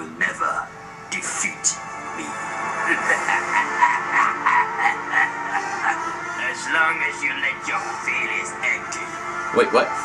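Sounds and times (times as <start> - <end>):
rhythmic pulsing sound: 0.8 - 10.0.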